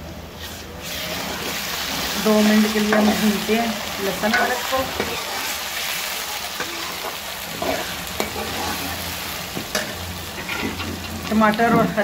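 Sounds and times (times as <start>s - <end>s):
onions sizzling in a pan: 0.4s - 12.0s.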